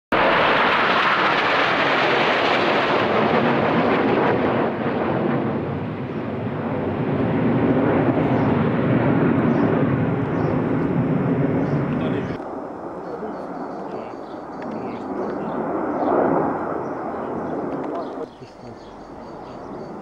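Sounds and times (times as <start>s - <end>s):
jets flying over roaring: 0.1s - 20.0s.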